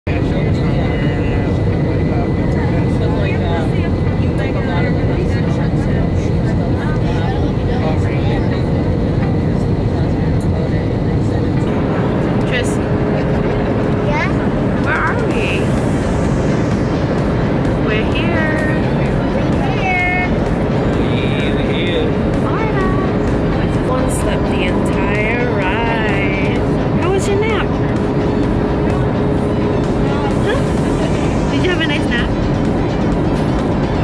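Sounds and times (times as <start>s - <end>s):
indistinct passenger voices: 0.1s - 34.0s
jet engine and airflow noise: 0.1s - 34.0s.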